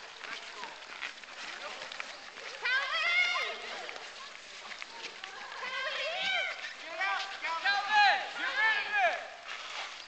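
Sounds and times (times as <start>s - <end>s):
players shouting: 5.5s - 9.4s.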